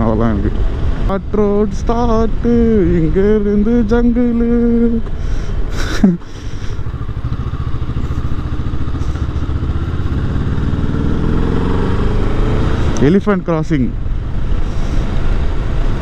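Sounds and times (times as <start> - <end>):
motorcycle engine revving: 2.2 - 13.3.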